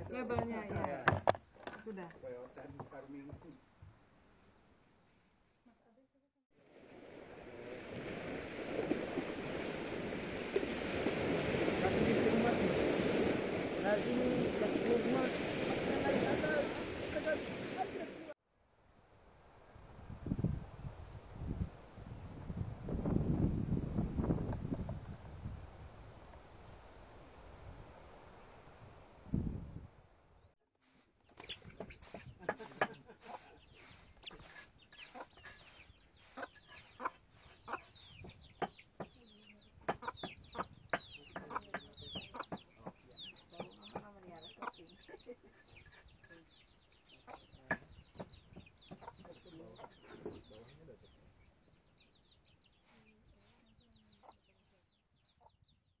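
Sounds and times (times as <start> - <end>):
chickens clucking and chirping: 31.2 - 55.8.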